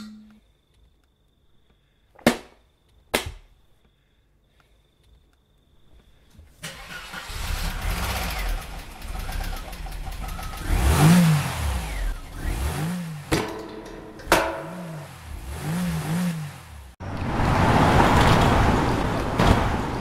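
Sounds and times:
car engine revving: 6.8s - 20.0s.

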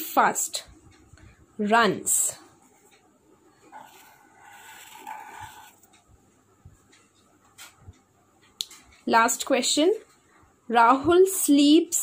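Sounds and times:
pen scratching on paper: 3.7s - 5.9s.

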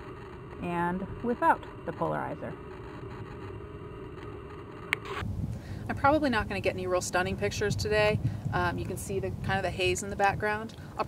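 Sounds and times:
low rumble with faint hiss: 0.0s - 11.0s
speech: 0.6s - 2.6s, 5.9s - 10.7s.

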